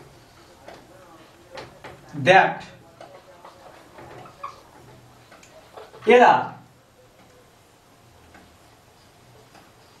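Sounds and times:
marker pen writing on whiteboard: 0:03.0 - 0:06.0.

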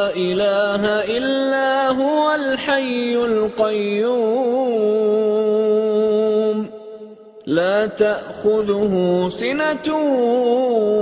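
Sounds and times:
person chanting recitation: 0:00.0 - 0:11.0.

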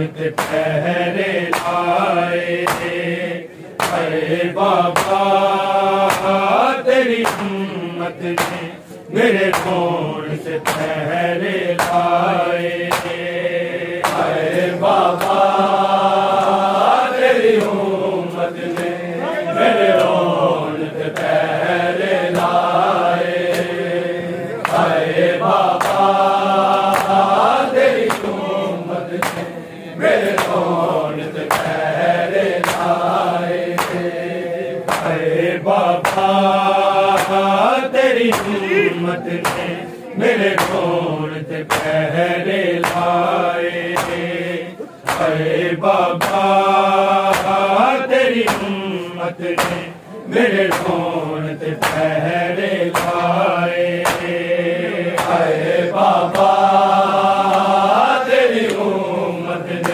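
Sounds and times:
men chanting a lament: 0:00.0 - 0:59.9
chest-beating slaps: 0:00.2 - 0:19.1, 0:19.7 - 0:23.9, 0:24.6 - 0:59.0, 0:59.7 - 0:59.9.

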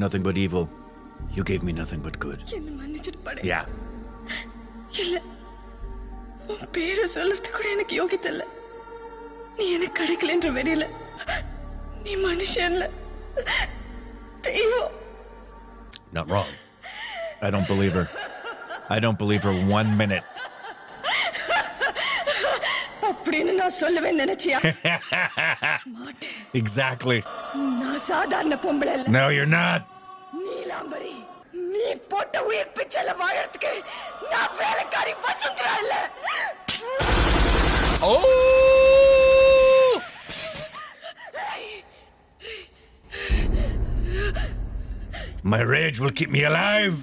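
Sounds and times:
breathy gasps: 0:16.4 - 0:17.4, 0:40.4 - 0:45.4
woman laughing: 0:17.5 - 0:23.6, 0:24.4 - 0:26.4
deep low rumble: 0:43.1 - 0:45.5.

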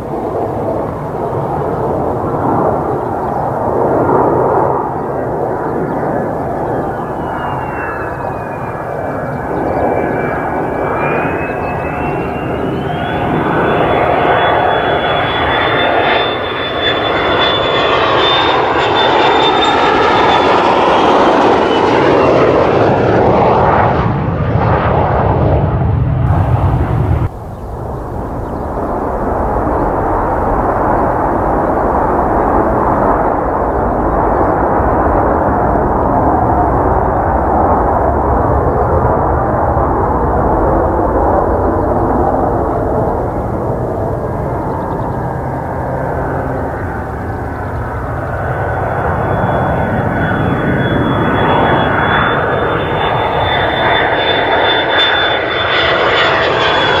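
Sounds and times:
distant jet rumble: 0:00.0 - 0:57.0
jet engine roar with high whine: 0:00.0 - 0:57.0.

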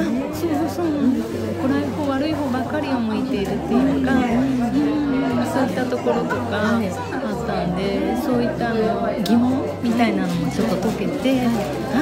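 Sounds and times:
chatter of people: 0:00.0 - 0:12.0
woman speaking: 0:00.4 - 0:12.0.

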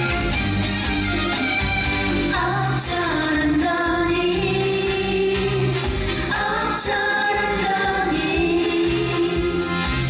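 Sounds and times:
pop accompaniment: 0:00.0 - 0:10.0
pulsing bass: 0:00.0 - 0:10.0
women singing in harmony: 0:02.3 - 0:09.6.

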